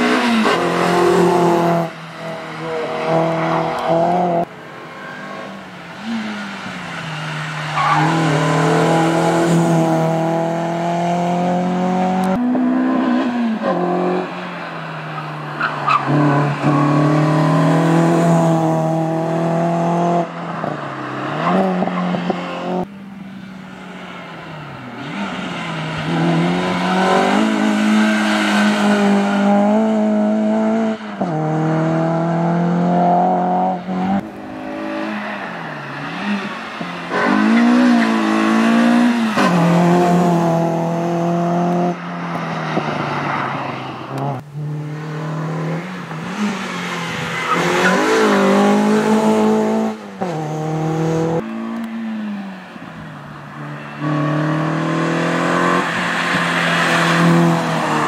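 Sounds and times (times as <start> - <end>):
car engine revving hard: 36.0 - 42.0, 54.0 - 58.0.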